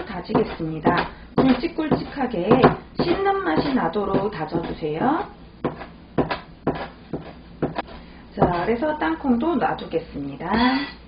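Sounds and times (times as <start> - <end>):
cleaver chopping on cutting board: 0.3 - 4.8, 5.6 - 8.7.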